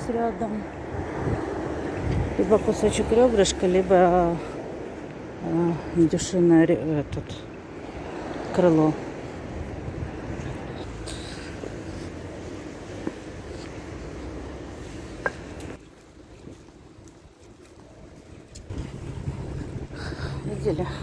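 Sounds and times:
low street rumble: 0.0s - 21.0s
wind on microphone: 0.6s - 3.1s, 9.0s - 10.9s, 17.9s - 21.0s.

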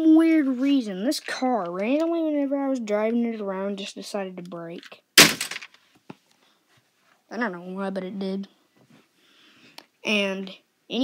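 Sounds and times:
toy car crashing into bin: 5.2s - 5.8s.

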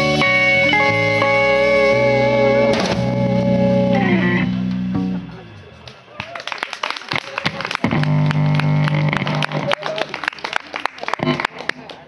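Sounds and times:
electric guitar and bass band: 0.0s - 6.0s, 7.4s - 10.0s, 11.2s - 11.7s
hand clapping: 5.8s - 12.0s.

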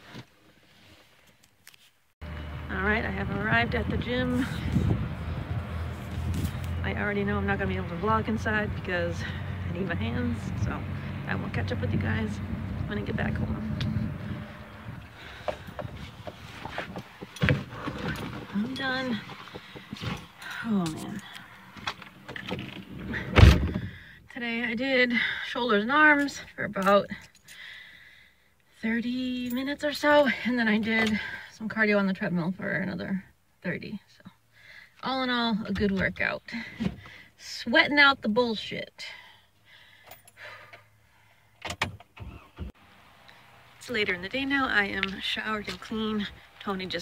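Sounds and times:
car cabin background noise: 2.2s - 25.0s, 41.6s - 47.0s
rustling: 5.8s - 6.9s, 14.4s - 23.2s
heavy thump in vehicle cab: 23.0s - 23.9s.

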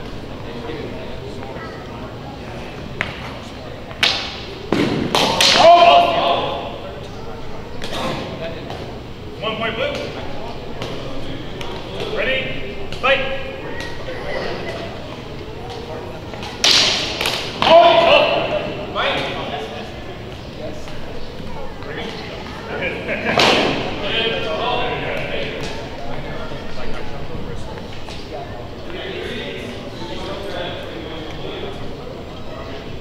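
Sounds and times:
people shouting: 5.2s - 6.8s, 17.6s - 18.8s.

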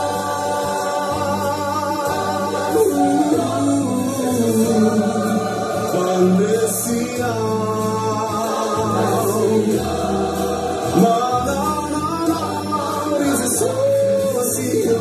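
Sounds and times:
gospel choir singing: 0.0s - 15.0s.

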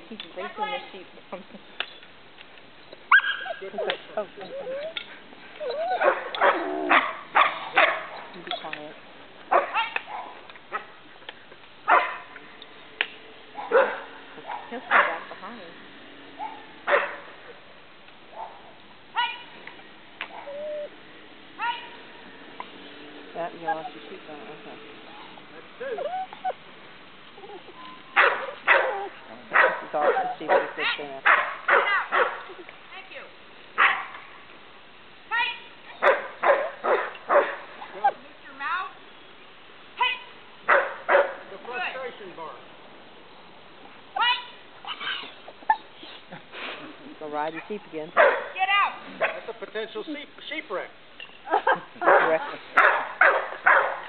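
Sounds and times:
dog barking: 6.0s - 8.2s, 9.5s - 11.0s, 11.9s - 12.3s, 13.6s - 15.3s, 16.4s - 17.3s, 28.2s - 32.4s, 33.8s - 34.2s, 36.0s - 37.6s, 40.7s - 41.4s, 48.2s - 48.6s, 49.2s - 49.5s, 52.0s - 54.0s.

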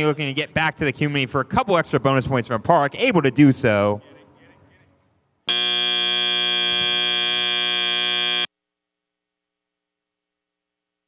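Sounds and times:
buzzer tone: 5.5s - 8.5s.

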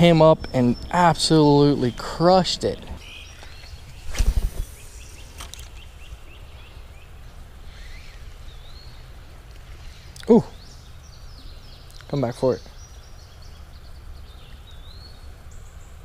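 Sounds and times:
background hiss: 0.0s - 16.0s
small birds chirping: 0.0s - 16.0s
microphone handling rustle: 3.0s - 6.0s.

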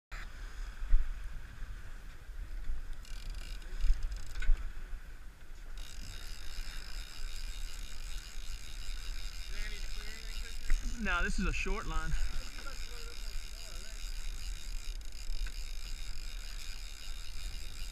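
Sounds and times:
outboard motors whining: 2.2s - 17.9s.

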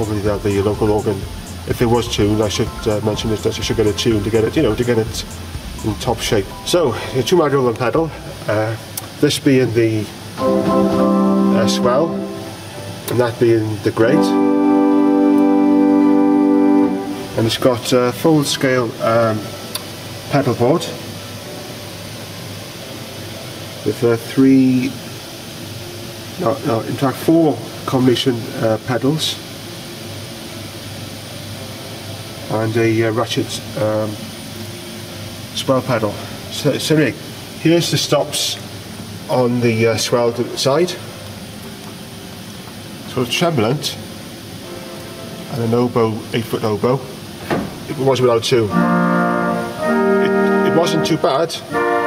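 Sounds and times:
pipe organ held note: 0.0s - 8.5s, 10.4s - 19.5s, 48.6s - 52.0s
faint low hum: 0.0s - 21.6s
even hiss: 0.0s - 52.0s.

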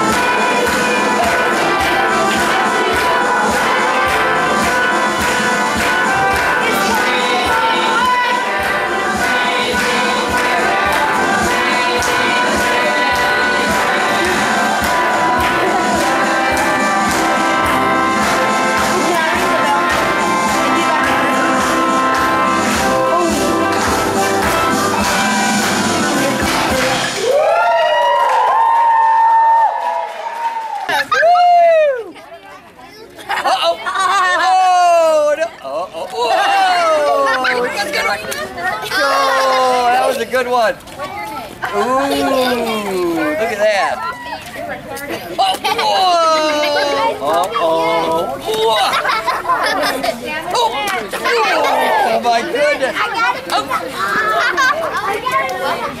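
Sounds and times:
music: 0.0s - 27.9s
children talking and calling out: 30.9s - 56.0s.

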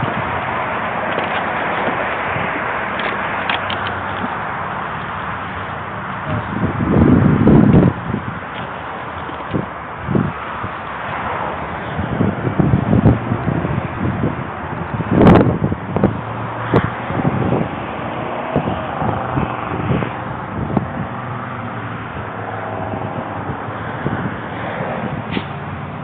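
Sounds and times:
camera handling rubbing and knocking: 1.0s - 2.2s, 2.9s - 4.4s, 8.5s - 9.6s.

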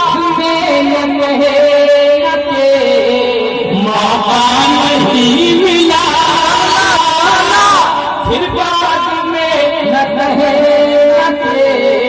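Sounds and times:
man singing through loudspeakers: 0.0s - 12.0s.

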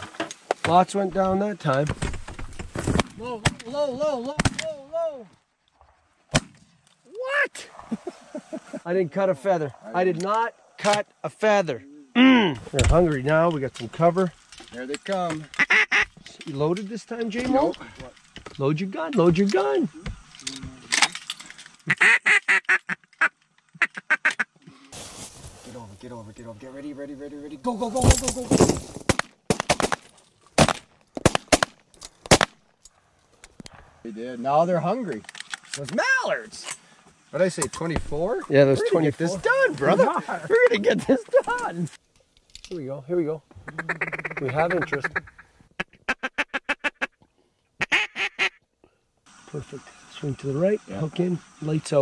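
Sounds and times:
steady hiss: 7.0s - 22.6s, 24.8s - 28.4s, 33.0s - 45.7s, 49.2s - 52.0s
duck call quacks: 15.5s - 16.2s, 21.9s - 24.6s, 43.6s - 47.2s, 47.8s - 48.6s.

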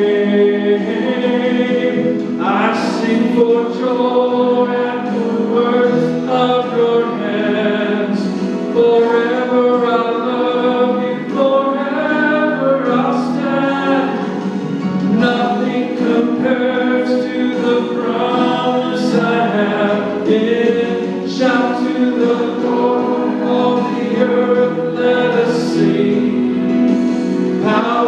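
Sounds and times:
man singing into a microphone: 0.0s - 28.0s
musical accompaniment: 0.0s - 28.0s.

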